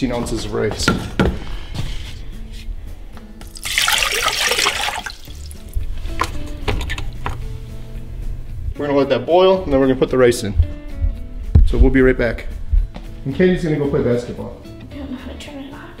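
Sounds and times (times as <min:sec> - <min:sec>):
water pouring into a saucepan: 0:03.4 - 0:05.8.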